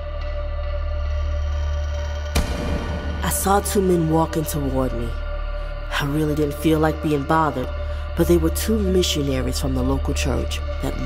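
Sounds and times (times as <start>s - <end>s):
ambient music with sustained chords: 0.0s - 11.0s.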